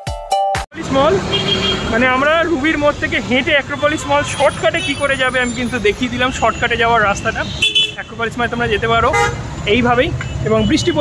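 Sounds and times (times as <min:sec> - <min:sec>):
road traffic: 0:00.7 - 0:11.0
car horn toot: 0:01.3 - 0:02.1, 0:03.7 - 0:05.7, 0:06.5 - 0:08.2, 0:09.1 - 0:09.4.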